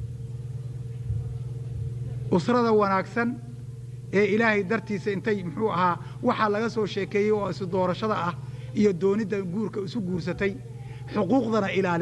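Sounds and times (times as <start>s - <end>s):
low steady hum: 0.0s - 12.0s
speech: 2.3s - 3.5s, 4.1s - 12.0s.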